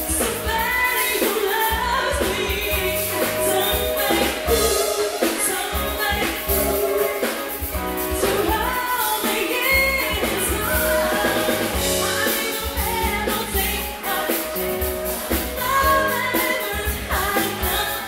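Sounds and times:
person singing: 0.0 - 18.0
soul band playing: 0.0 - 18.0
steady drum beat: 0.0 - 18.0.

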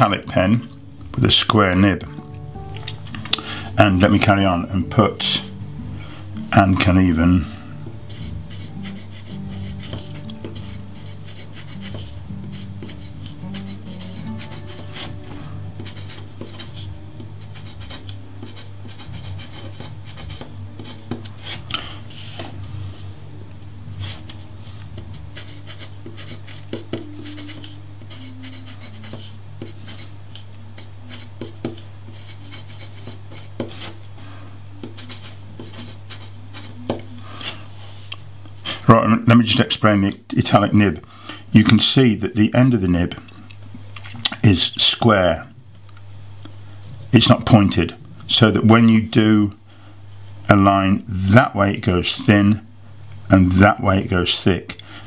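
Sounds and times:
steady low hum: 0.0 - 55.0
pen scratching on paper: 6.6 - 23.0, 23.9 - 30.1, 30.8 - 34.1, 34.8 - 38.2.

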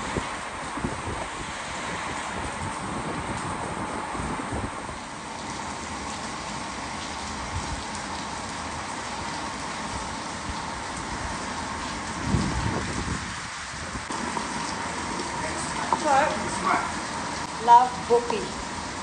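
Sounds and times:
heavy rain on a roof: 0.0 - 19.0.

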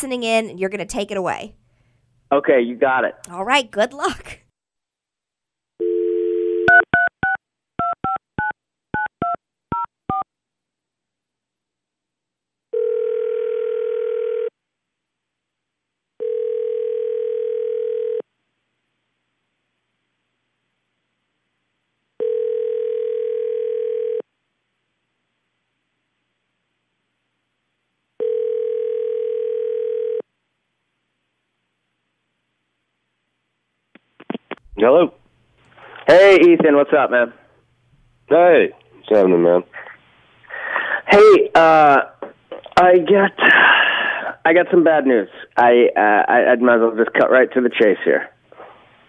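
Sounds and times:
phone ringback tone: 5.8 - 10.2, 12.7 - 14.5, 16.2 - 18.2, 22.2 - 24.2, 28.2 - 30.2
touch-tone dialling beeps: 5.9 - 10.2.

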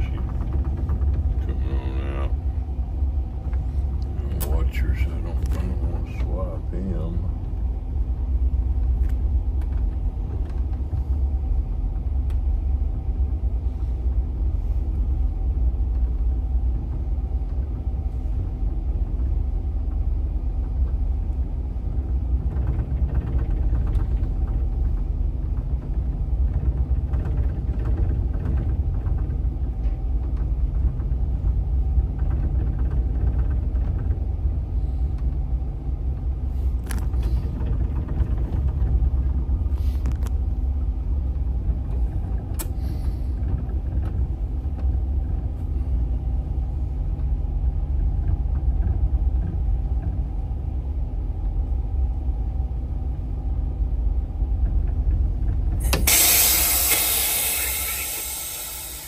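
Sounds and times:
boat diesel engines droning: 0.0 - 28.4, 34.6 - 59.0.

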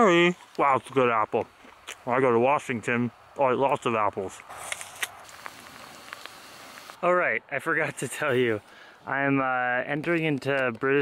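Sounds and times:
steady hiss: 2.2 - 9.4
small clicks: 4.7 - 7.0.

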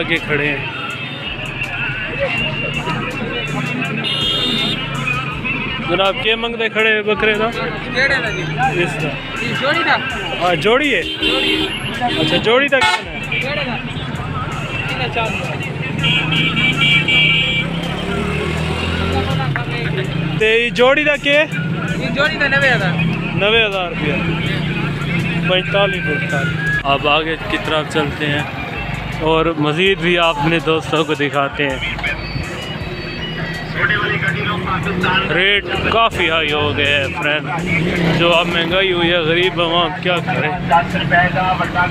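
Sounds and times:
people talking: 0.0 - 15.7, 17.8 - 32.6, 33.2 - 41.9.

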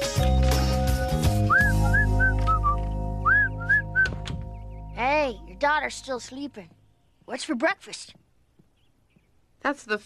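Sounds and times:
high chirping whistles: 1.4 - 4.3.

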